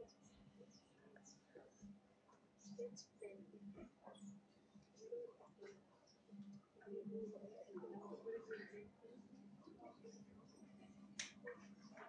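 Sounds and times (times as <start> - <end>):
faint voices murmuring: 0.0 - 12.0.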